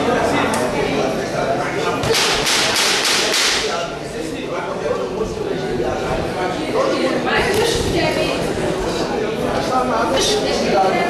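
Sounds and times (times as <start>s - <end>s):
voices in a large hall: 0.0s - 11.0s.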